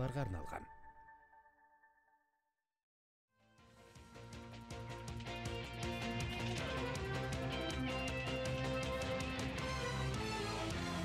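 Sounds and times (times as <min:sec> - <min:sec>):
person speaking announcement: 0:00.0 - 0:00.8.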